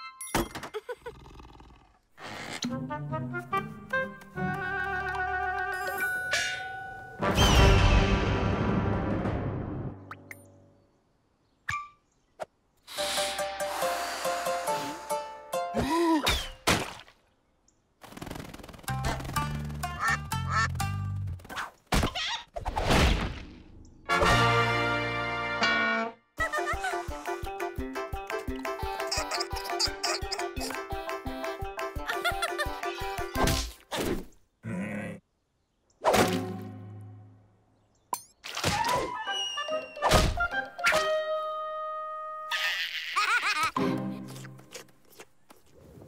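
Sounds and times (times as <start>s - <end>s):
cartoon slapstick music: 18.9s - 21.2s, 26.5s - 33.8s, 38.7s - 41.4s.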